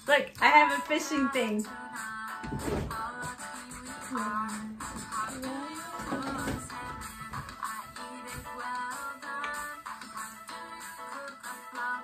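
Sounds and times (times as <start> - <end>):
children's song sung over instrumental backing: 0.0 - 12.0.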